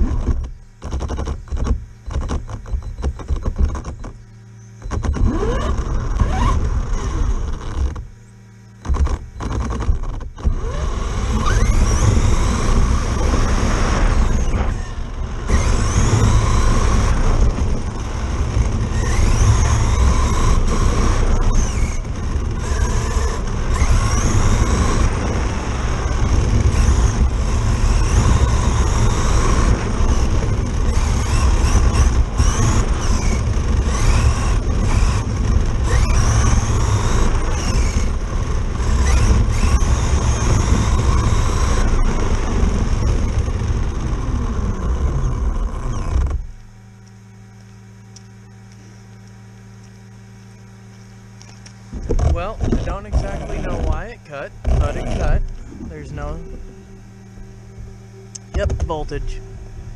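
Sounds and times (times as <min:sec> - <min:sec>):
electric motor whining: 0:00.0 - 0:59.9
wind on camera: 0:08.8 - 0:46.6, 0:51.4 - 0:57.2.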